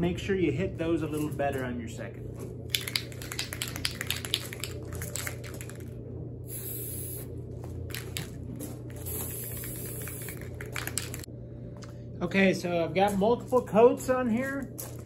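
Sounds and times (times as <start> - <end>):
aerosol can rattling: 2.7 - 5.9, 9.0 - 11.3
spray can hissing: 6.5 - 7.3, 9.0 - 11.3.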